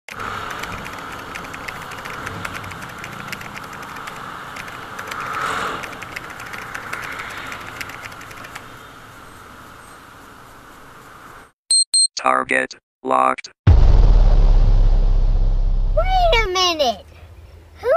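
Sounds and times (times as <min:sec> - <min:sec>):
motorcycle engine and road noise: 0:00.1 - 0:11.3
short electronic beeps: 0:11.7 - 0:12.1.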